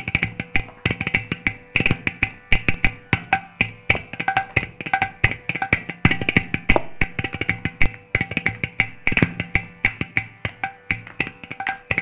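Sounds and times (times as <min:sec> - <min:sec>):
rapid percussion strokes: 0:00.0 - 0:12.0.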